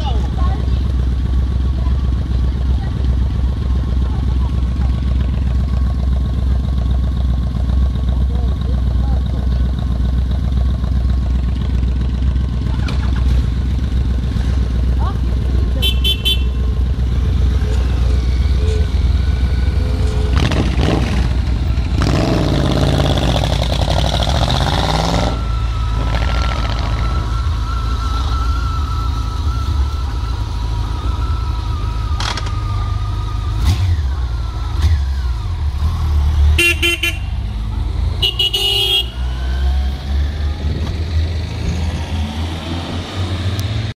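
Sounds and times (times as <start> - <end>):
motorcycle engines rumbling: 0.0 - 44.0
motorcycles revving and riding off: 0.0 - 44.0
horn toots: 15.7 - 21.1, 36.5 - 37.5, 38.1 - 39.4
vehicle horn toots: 15.8 - 16.8, 36.5 - 37.4, 38.2 - 39.3.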